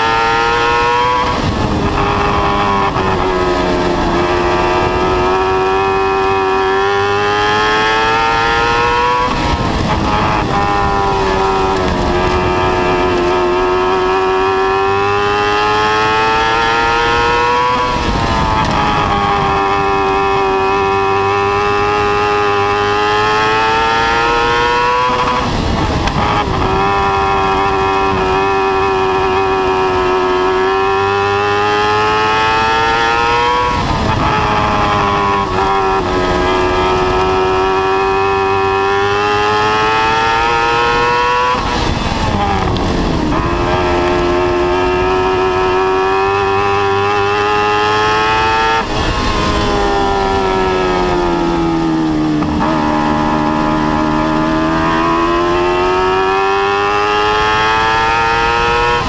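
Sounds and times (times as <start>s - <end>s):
race car engine at high revs: 0.0s - 59.0s.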